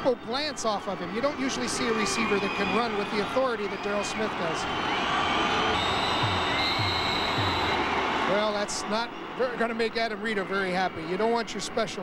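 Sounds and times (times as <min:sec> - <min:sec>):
music playing in stadium: 0:00.0 - 0:12.0
stadium crowd noise: 0:00.0 - 0:12.0
low beat: 0:05.7 - 0:07.9.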